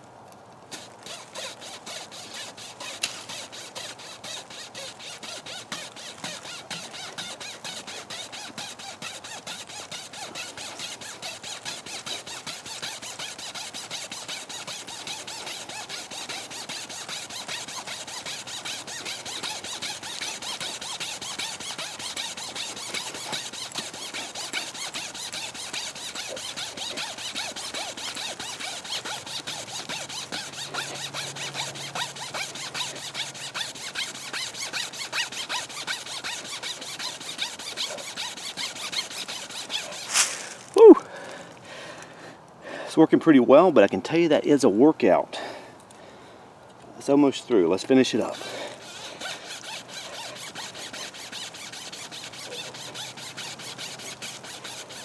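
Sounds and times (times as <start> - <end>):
wire saw rasping on wood: 0.7 - 40.8, 47.0 - 55.0.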